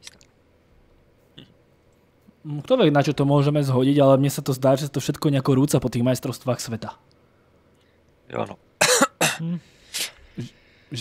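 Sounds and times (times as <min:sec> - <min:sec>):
man coughing: 0:08.8 - 0:09.6
man clearing his throat: 0:08.8 - 0:09.7.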